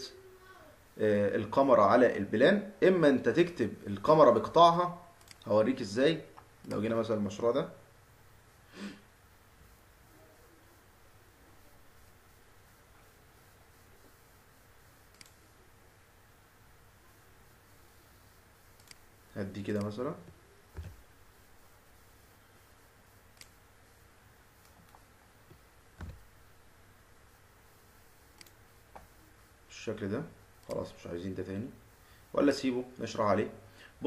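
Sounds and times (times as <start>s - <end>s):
low room hum: 0.0s - 34.0s
man speaking: 1.0s - 7.9s, 19.3s - 20.3s, 29.7s - 33.7s
computer mouse click: 5.2s - 5.5s, 15.1s - 15.4s, 18.8s - 19.0s, 23.3s - 23.6s, 28.4s - 29.1s.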